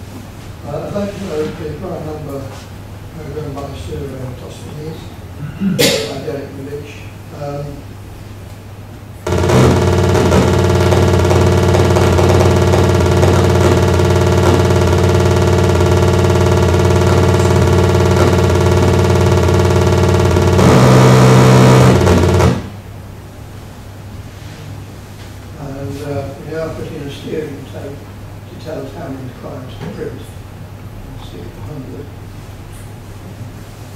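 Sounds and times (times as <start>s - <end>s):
buzzing computer tone: 9.3s - 22.8s.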